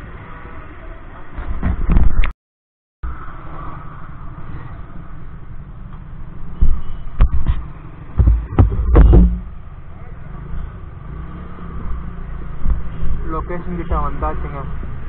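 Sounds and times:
loud knocks and bumps: 1.4 - 2.2, 6.6 - 9.6.

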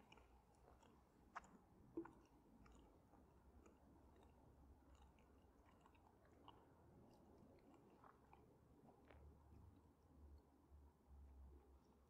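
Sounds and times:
faint chewing: 0.0 - 9.6.

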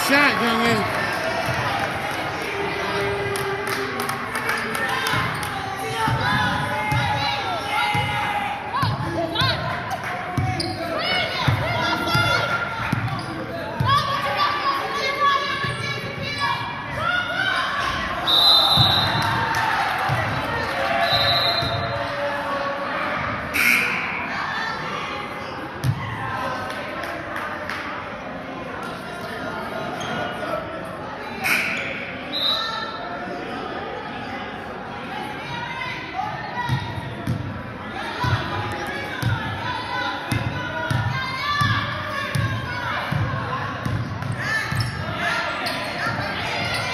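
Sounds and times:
voices echoing in gym: 0.0 - 46.9.

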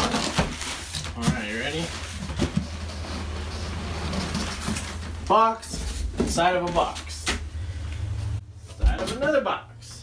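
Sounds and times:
cardboard box scraping rustle: 0.0 - 5.2.

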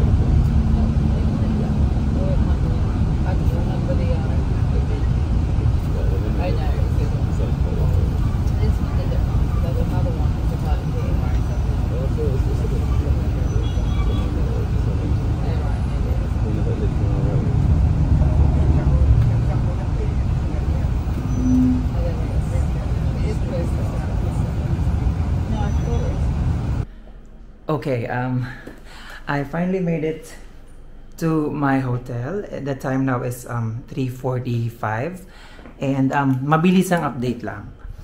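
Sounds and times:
faint voices: 0.0 - 26.6
bus engine rumble: 0.0 - 27.5
road noise: 0.0 - 27.7.

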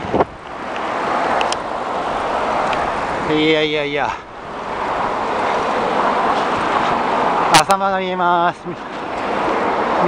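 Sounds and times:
cars passing: 0.0 - 10.0
road traffic rushing: 0.0 - 10.0.

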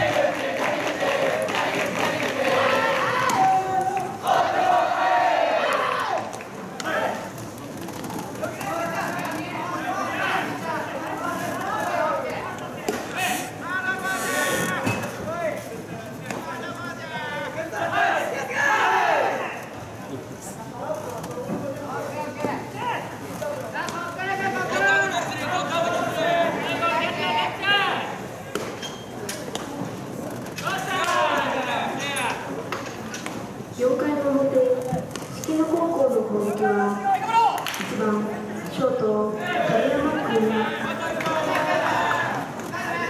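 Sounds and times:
people calling out and talking: 0.0 - 43.0.

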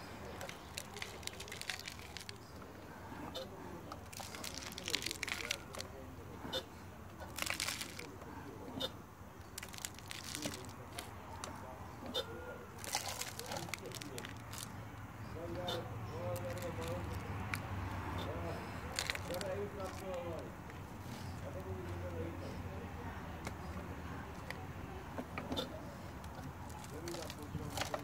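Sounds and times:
potting mix sprinkled on plastic tray: 0.3 - 2.5, 4.1 - 6.0, 7.3 - 8.2, 9.4 - 11.1, 12.8 - 14.8, 16.2 - 17.2, 18.9 - 20.5, 26.7 - 28.0.

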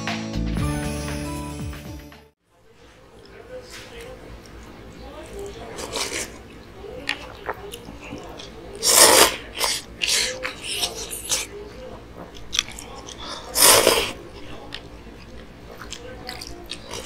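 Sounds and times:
wet chewing: 3.1 - 17.0
noodles slurped loudly: 7.1 - 11.5, 12.7 - 14.2.

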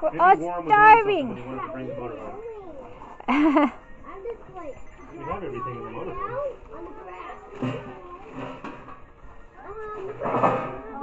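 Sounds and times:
people talking quietly: 0.0 - 11.0.

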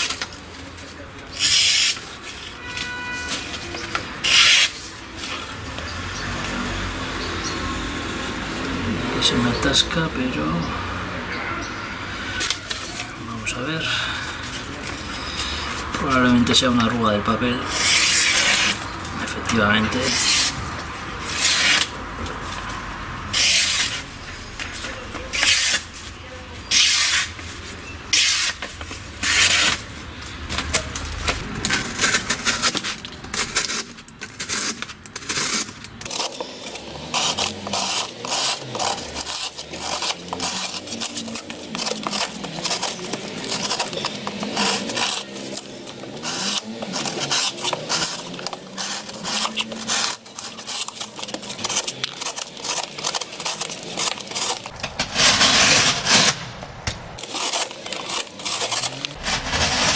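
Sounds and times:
knife cutting cardboard: 0.0 - 5.0, 17.6 - 56.4, 57.2 - 59.9
knife slicing paper: 0.0 - 5.3, 17.7 - 22.8, 23.4 - 30.0, 31.6 - 56.4, 57.2 - 59.9.

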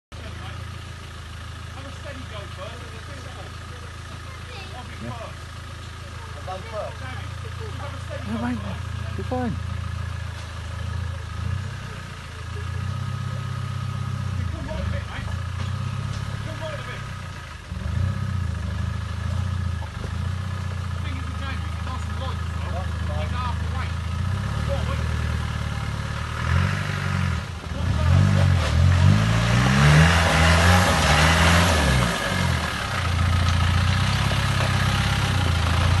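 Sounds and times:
off-road vehicle engine revving: 0.1 - 36.0.

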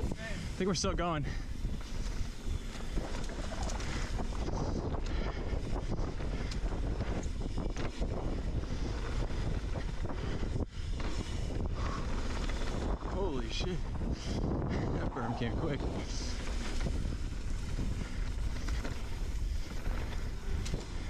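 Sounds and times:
wind buffeting microphone: 0.0 - 21.0
tyre noise on dirt: 1.5 - 21.0.

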